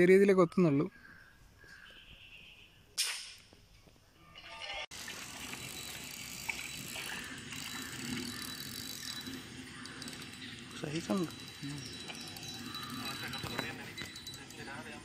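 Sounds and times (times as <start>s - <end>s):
fishing reel ratcheting whir: 4.9s - 15.0s.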